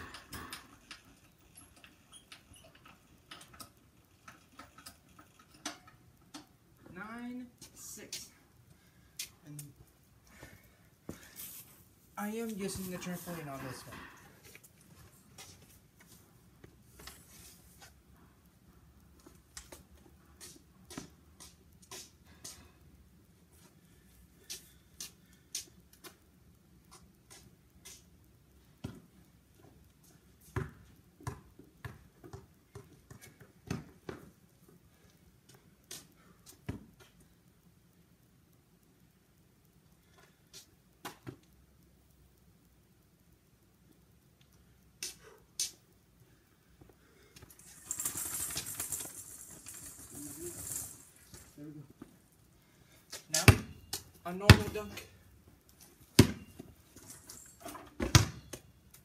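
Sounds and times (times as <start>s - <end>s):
rustling: 10.3s - 18.0s, 46.8s - 54.2s
basketball bouncing on concrete: 28.8s - 29.1s, 30.5s - 34.3s, 53.4s - 55.0s, 56.2s - 56.6s, 58.0s - 58.6s.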